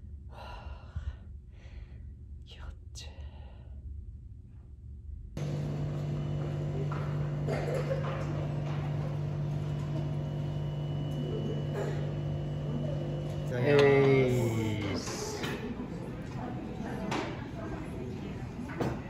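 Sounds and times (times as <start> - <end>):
steady low hum: 0.0 - 19.0
indistinct background voices: 5.4 - 19.0.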